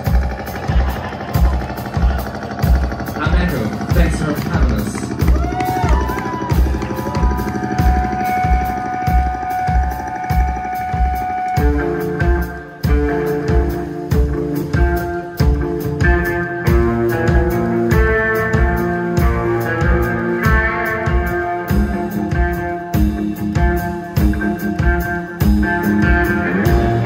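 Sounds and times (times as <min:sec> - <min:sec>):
electric guitar bent notes: 0:00.0 - 0:27.0
live rock band: 0:00.0 - 0:27.0
kick drum beat: 0:03.9 - 0:09.9.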